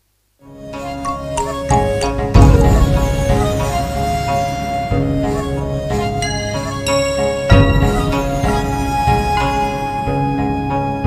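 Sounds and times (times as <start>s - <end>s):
sustained pitched notes: 0.6s - 11.0s
heavy low hit: 1.9s - 5.8s, 7.5s - 9.4s.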